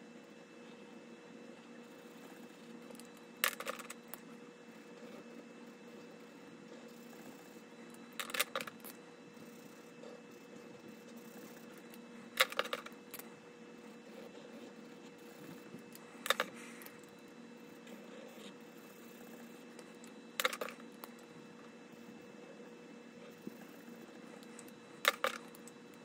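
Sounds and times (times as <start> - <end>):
faint steady hum: 0.0 - 26.0.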